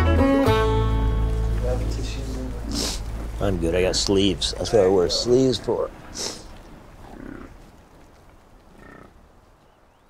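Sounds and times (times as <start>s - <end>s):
bison grunt: 2.4s - 7.6s, 8.7s - 9.2s.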